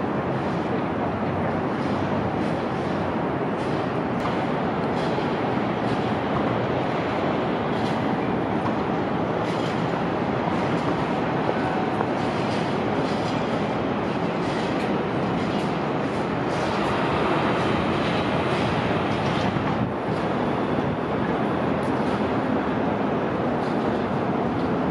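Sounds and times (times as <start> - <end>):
city noise roar: 0.0 - 24.9.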